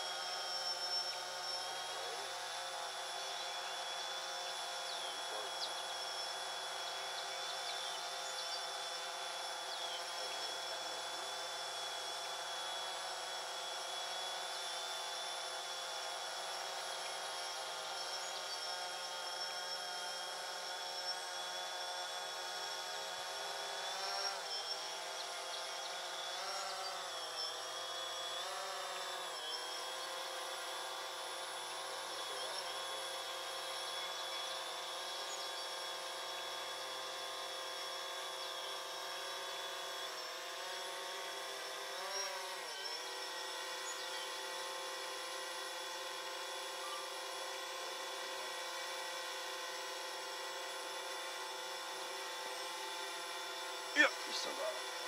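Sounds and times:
drone propellers whining: 0:00.0 - 0:55.0.

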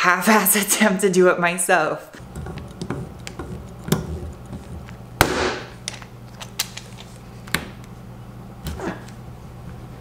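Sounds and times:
sharp pop: 0:05.2 - 0:05.7.

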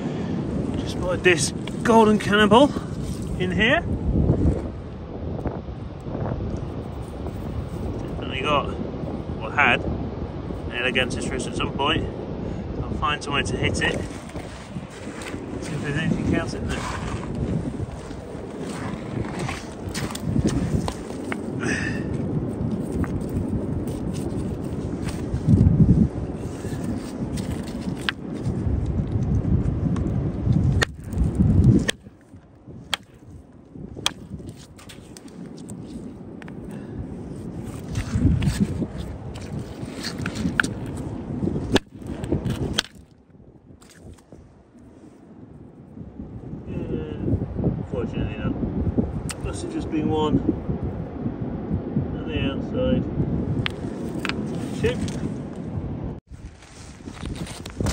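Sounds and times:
wind buffeting microphone: 0:00.0 - 0:57.9
footsteps on pebbles: 0:14.0 - 0:25.3, 0:56.3 - 0:57.9.

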